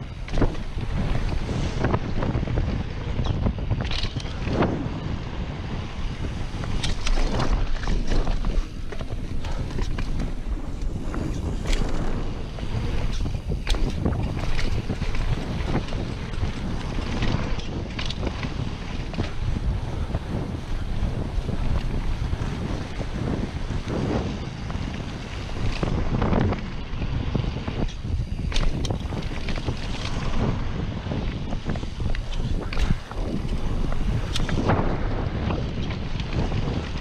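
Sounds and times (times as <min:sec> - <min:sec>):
bike clicks and rattles: 0:00.0 - 0:37.0
tyres on packed dirt: 0:00.0 - 0:37.0
wind rumbling over microphone: 0:00.0 - 0:37.0.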